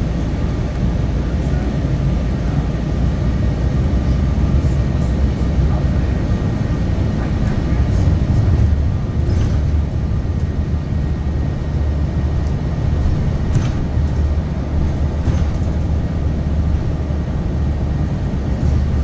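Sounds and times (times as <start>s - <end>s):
bus drivetrain drone: 0.0s - 19.0s
road noise: 0.0s - 19.0s.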